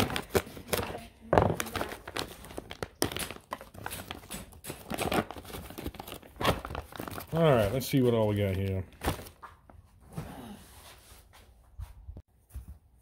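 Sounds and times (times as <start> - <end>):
plastic bag tearing and crinkling: 0.0 - 9.4.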